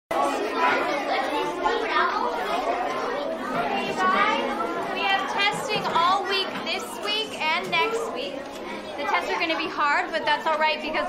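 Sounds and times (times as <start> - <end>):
children chattering: 0.1 - 11.0.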